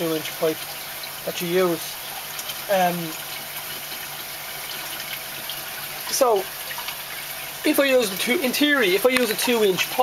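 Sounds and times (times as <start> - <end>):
faint steady hum: 0.0 - 10.0
water rushing through pipes: 0.0 - 10.0.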